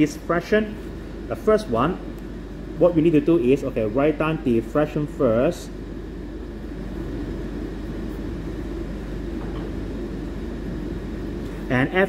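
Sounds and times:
steady low background hum: 0.0s - 12.0s.

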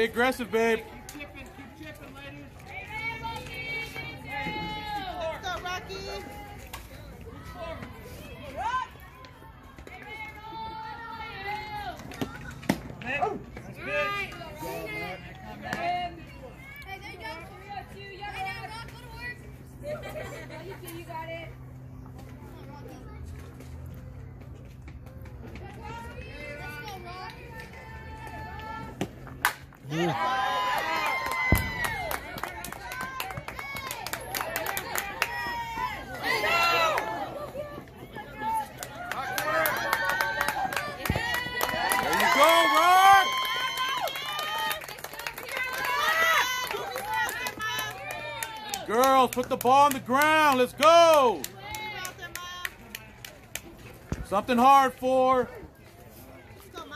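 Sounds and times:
crowd cheering and shouting: 2.8s - 12.4s, 29.8s - 52.6s
people clapping: 29.4s - 37.6s, 38.2s - 53.9s.

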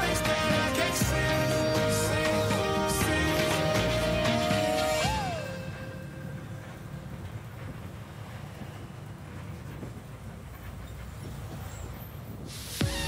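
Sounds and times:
bus engine and road rumble: 0.0s - 13.0s.

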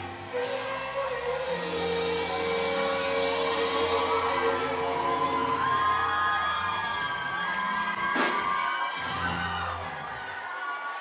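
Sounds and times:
live band music amplified: 0.0s - 10.1s
long held note: 1.2s - 7.1s.

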